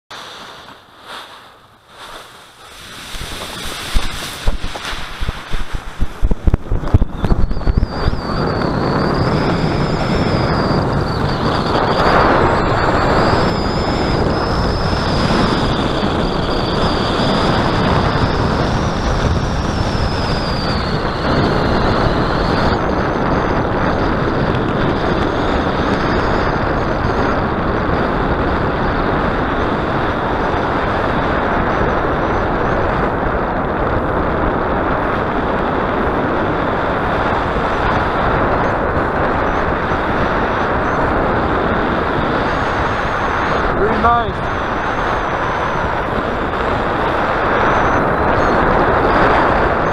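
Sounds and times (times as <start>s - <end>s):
wind rushing over microphone: 0.1s - 49.9s.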